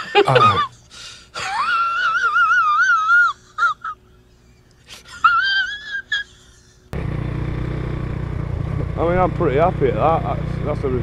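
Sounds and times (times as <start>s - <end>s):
man's high-pitched wheezing laugh: 0.0s - 6.9s.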